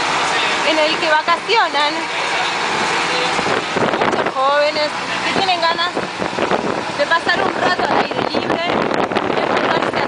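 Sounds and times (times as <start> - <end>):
bus engine and road noise: 0.0 - 10.0.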